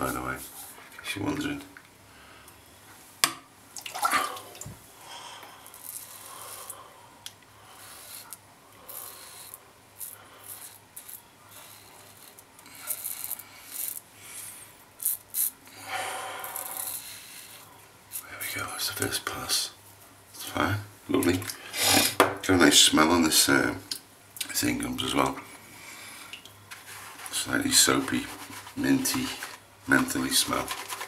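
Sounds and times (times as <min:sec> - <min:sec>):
razor scraping stubble: 0:05.6 - 0:06.8, 0:07.7 - 0:15.6, 0:16.4 - 0:18.2, 0:26.7 - 0:31.0.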